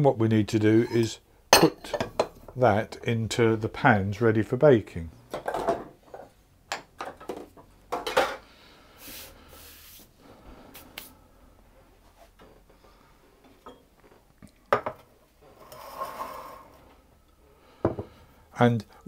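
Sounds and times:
kitchen utensils clinking: 0.8 - 2.6.

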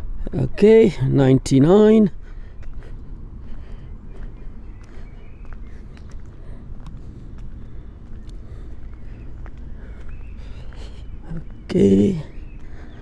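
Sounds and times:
footsteps on paved path: 0.0 - 13.0
steady low rumble: 0.0 - 13.0.

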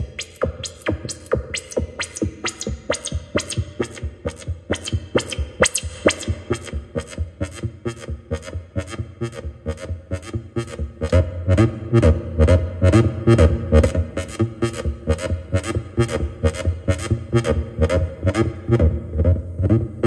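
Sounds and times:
sharp ticking beat: 0.0 - 12.6
synthesizer bass line: 0.0 - 20.0.

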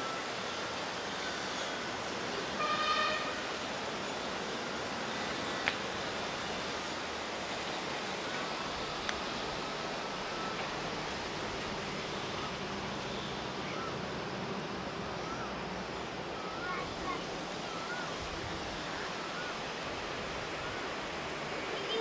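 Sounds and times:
river flowing over rocks: 0.0 - 22.0.

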